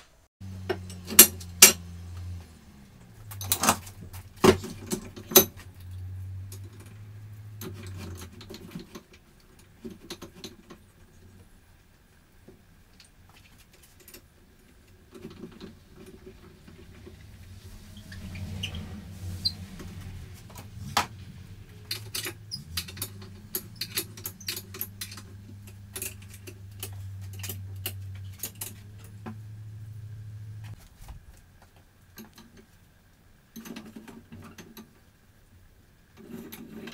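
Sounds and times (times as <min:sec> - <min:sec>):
low steady hum: 0:00.4 - 0:33.3
small objects clicking and clattering: 0:20.5 - 0:29.4.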